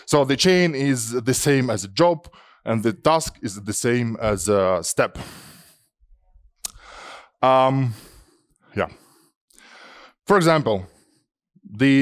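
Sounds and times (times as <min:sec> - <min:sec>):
man breathing into microphone: 0:05.2 - 0:05.9, 0:06.7 - 0:10.2.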